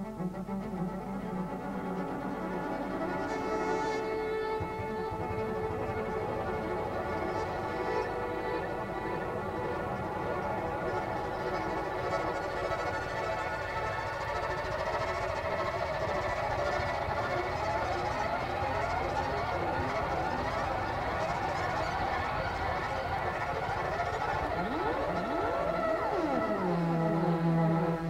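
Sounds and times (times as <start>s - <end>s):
sliding pitch glides: 1.2s - 28.0s.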